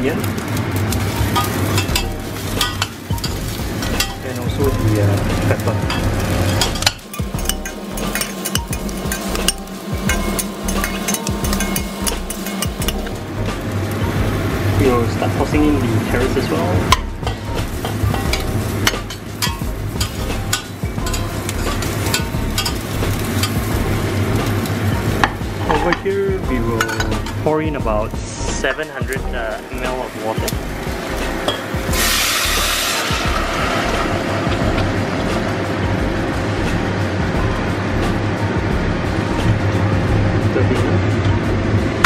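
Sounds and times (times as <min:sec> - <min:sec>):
food sizzling in hot oil: 0:00.0 - 0:39.7
metal spatula scraping pot: 0:05.8 - 0:13.2, 0:16.4 - 0:26.0.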